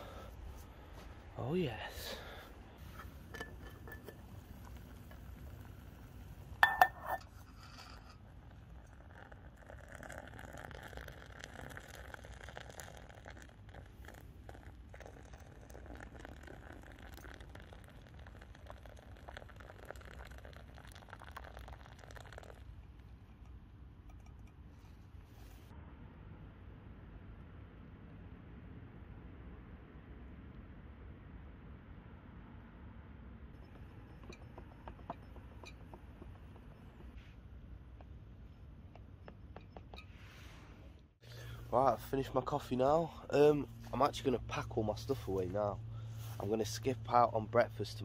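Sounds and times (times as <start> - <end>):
hot water pouring into cup: 2.2 - 24.6, 33.6 - 37.2
metal cookware clinks: 6.6 - 8.0.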